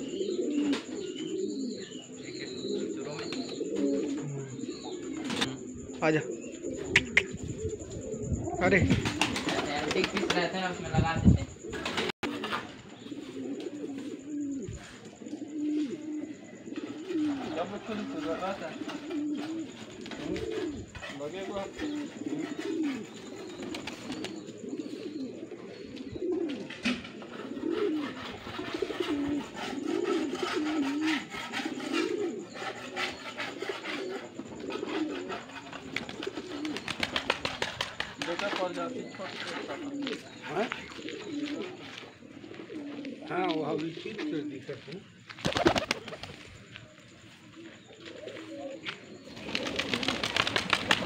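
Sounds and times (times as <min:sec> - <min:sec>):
pigeons cooing: 0:00.0 - 0:51.0.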